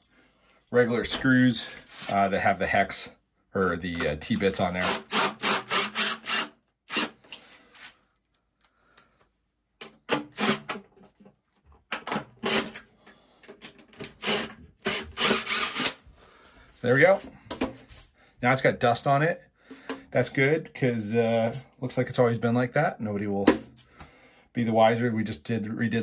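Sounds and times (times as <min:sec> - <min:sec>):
cordless drill driving screws: 0:04.8 - 0:07.3, 0:10.4 - 0:10.8, 0:12.4 - 0:12.8, 0:14.2 - 0:16.0.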